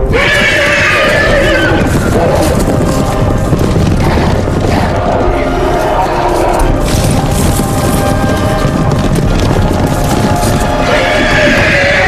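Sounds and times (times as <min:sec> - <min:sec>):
horse whinnying: 0:00.0 - 0:02.7, 0:10.7 - 0:12.0
orchestral film score: 0:00.0 - 0:12.0.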